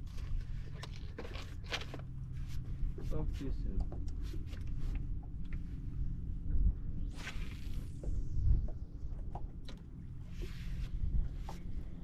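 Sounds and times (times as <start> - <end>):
fishing rod scrapes and rustles: 0.0 - 3.4, 10.2 - 11.9
steady low rumble: 0.0 - 12.0.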